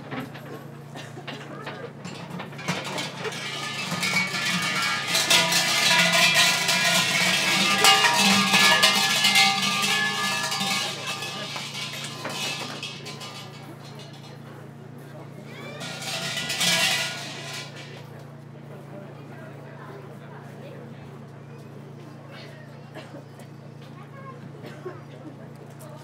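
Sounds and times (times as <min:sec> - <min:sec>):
metal shrine bells jangling: 0:02.1 - 0:14.4, 0:15.6 - 0:17.9.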